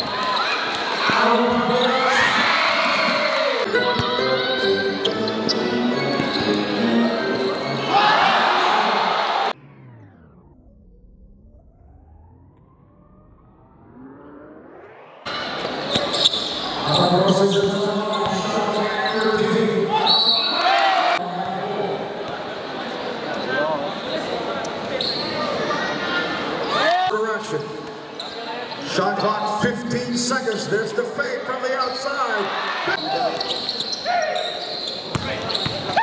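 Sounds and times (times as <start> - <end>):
players and crowd shouting: 0.0 - 3.7, 7.8 - 9.6, 19.8 - 21.2
sneaker squeaks: 5.0 - 7.8, 15.6 - 20.6, 24.9 - 25.6, 28.1 - 29.4, 33.0 - 36.0
faint rising sweep: 9.5 - 15.9
basketball bouncing on court: 35.1 - 36.0.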